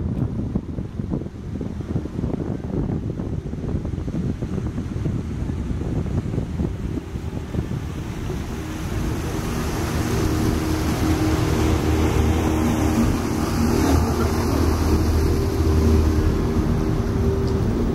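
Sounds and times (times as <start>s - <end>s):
boat engine running: 0.0s - 17.9s
boat wake washing: 0.0s - 17.9s
wind on microphone: 0.0s - 17.9s.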